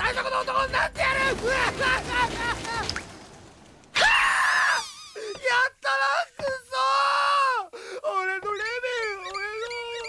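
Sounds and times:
man's excited cry: 1.0s - 2.9s, 4.0s - 8.2s.

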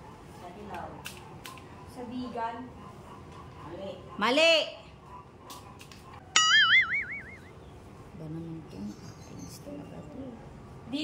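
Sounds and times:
wobbling boing tone: 6.4s - 7.4s.

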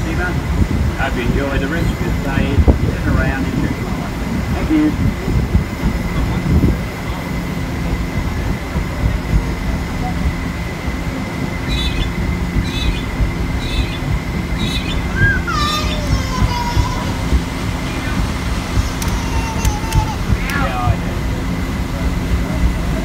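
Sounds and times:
engine and paddlewheels rumbling: 0.0s - 23.0s
faint constant whine: 0.0s - 23.0s.

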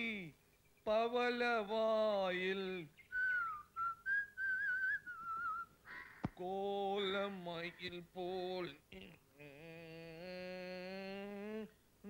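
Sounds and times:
man whistling a tune: 3.1s - 5.7s.

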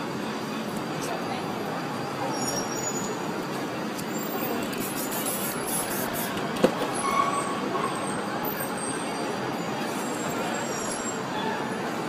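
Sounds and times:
traffic noise: 0.0s - 12.0s
voices of passers-by: 0.0s - 12.0s
faint high squeal: 10.0s - 11.8s.

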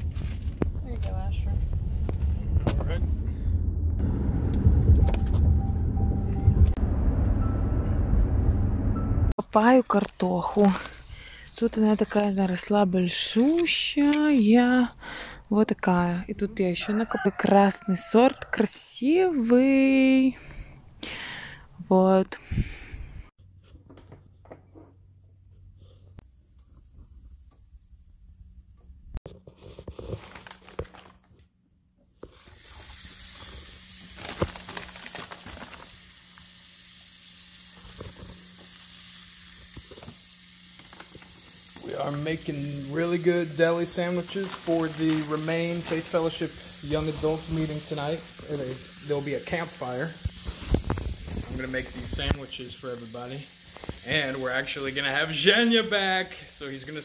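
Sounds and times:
woman speaking: 9.4s - 20.4s, 21.8s - 22.4s
sharp crackles: 32.3s - 55.2s
meat sizzling on a grill: 32.3s - 57.0s.

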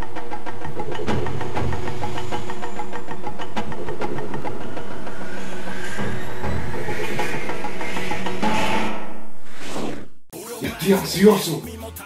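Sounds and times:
intro theme music with fast beat: 0.0s - 8.7s
rising sweep: 0.7s - 10.3s.

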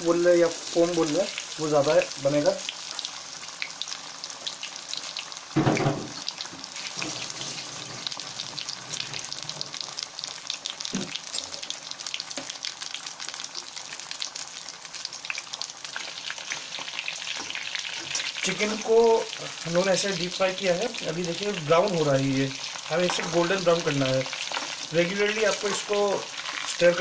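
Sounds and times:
food deep-frying in oil: 0.0s - 27.0s.

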